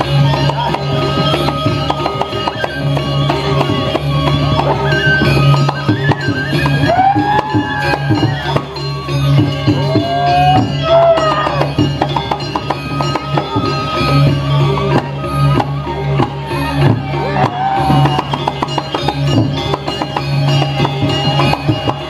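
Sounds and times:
gamelan drum and cymbal strokes: 0:00.0 - 0:22.0.

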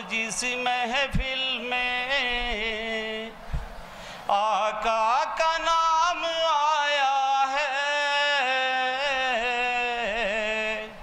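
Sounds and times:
man singing a long note: 0:00.0 - 0:03.4, 0:04.3 - 0:11.0.

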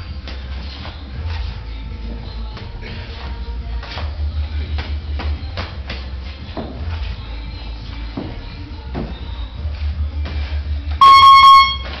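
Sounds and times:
timer electronic buzz: 0:11.0 - 0:11.9.

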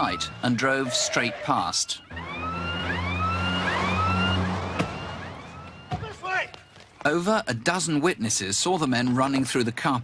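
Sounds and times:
siren sweeping up: 0:00.0 - 0:06.8.

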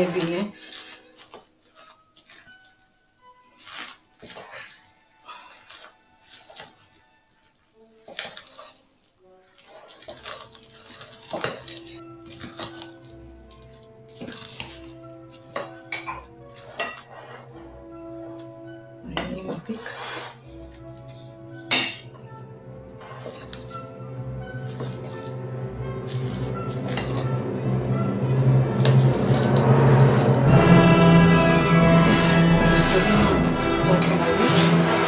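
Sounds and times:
soft background music: 0:00.0 - 0:35.0
spatula scraping glass bowl: 0:09.6 - 0:17.7, 0:22.9 - 0:35.0.

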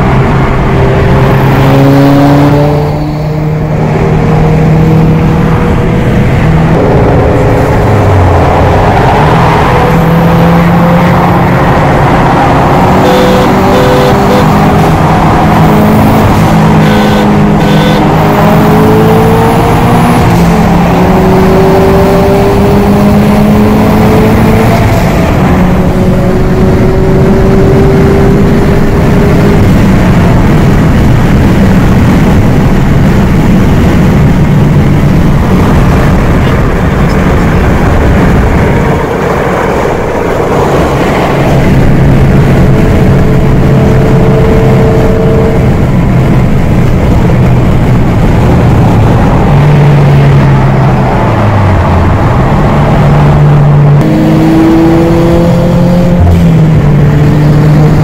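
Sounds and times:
car engine pulling hard: 0:00.0 - 0:58.0
road noise: 0:00.0 - 0:58.0
wind noise: 0:00.0 - 0:58.0.

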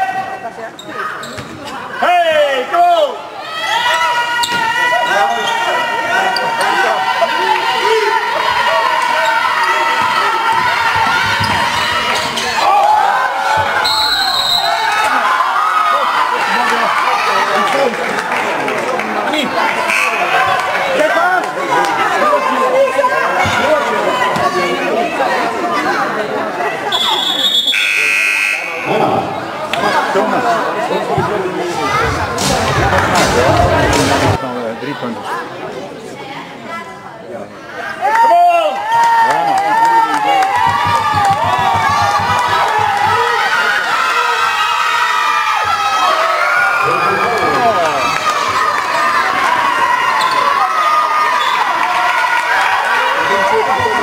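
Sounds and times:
spectators shouting: 0:01.9 - 0:18.0, 0:26.7 - 0:34.4, 0:37.8 - 0:54.0
basketball game buzzer: 0:19.9 - 0:20.3, 0:27.0 - 0:28.9
basketball bouncing on court: 0:40.6 - 0:43.2.

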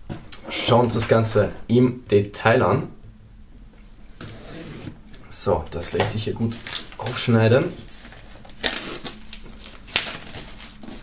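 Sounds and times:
knife slitting plastic film: 0:06.5 - 0:11.0.

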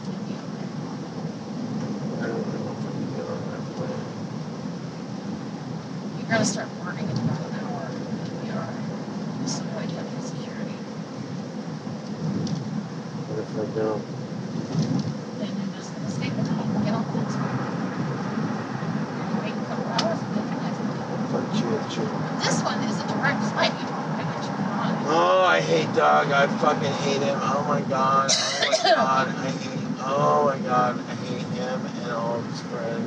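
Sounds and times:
car cabin road rumble: 0:00.0 - 0:33.0
faint indistinct voices: 0:02.0 - 0:04.2, 0:06.1 - 0:10.9, 0:13.3 - 0:14.1, 0:15.4 - 0:18.3, 0:19.0 - 0:33.0.

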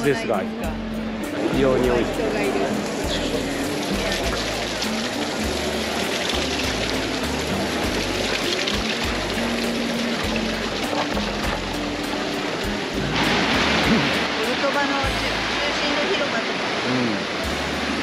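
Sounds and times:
people talking: 0:00.0 - 0:00.8, 0:01.4 - 0:04.4, 0:13.9 - 0:17.3
music: 0:00.0 - 0:18.0
fountain water splashing: 0:01.3 - 0:18.0.

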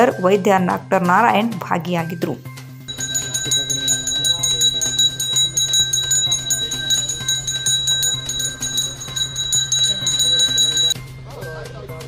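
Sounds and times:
hand bell ringing rapidly: 0:02.9 - 0:11.0.

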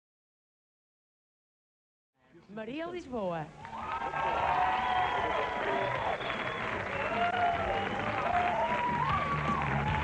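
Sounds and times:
audience applauding: 0:03.6 - 0:10.0
song backing music: 0:04.1 - 0:10.0.

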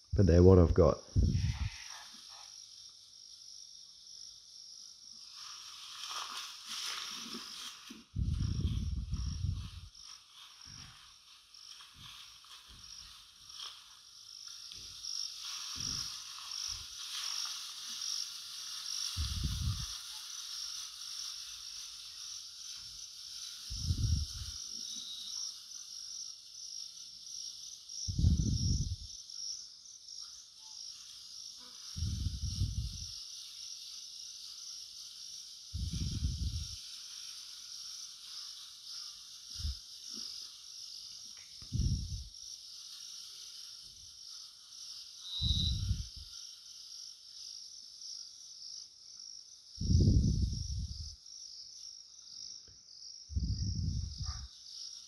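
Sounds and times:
high-pitched insect chorus: 0:00.0 - 0:55.0.

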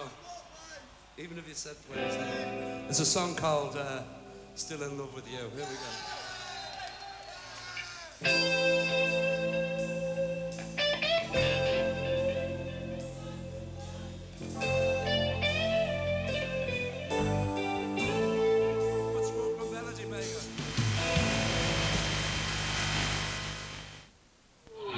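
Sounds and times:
live rock band playing: 0:01.9 - 0:04.5, 0:08.2 - 0:23.9
electric guitar bent notes: 0:08.2 - 0:24.1
cymbals crashing: 0:20.2 - 0:24.1.

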